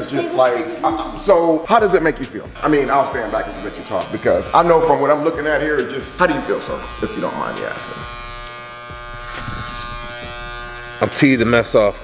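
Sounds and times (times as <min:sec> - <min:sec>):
electric hair clippers buzzing: 0:00.7 - 0:12.0.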